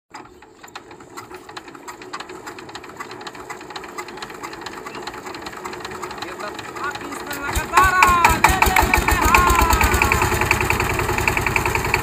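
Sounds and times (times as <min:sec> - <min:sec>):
diesel engine being hand-cranked: 0:00.1 - 0:12.0.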